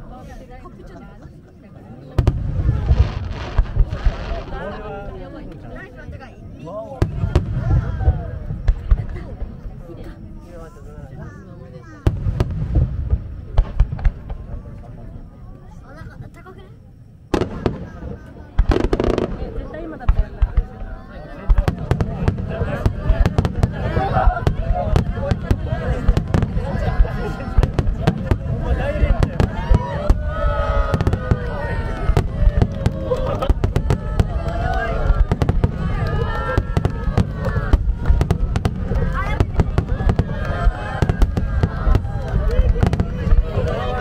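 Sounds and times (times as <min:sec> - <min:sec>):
fireworks bursting: 0:02.0 - 0:06.3, 0:06.9 - 0:09.9, 0:12.0 - 0:44.0.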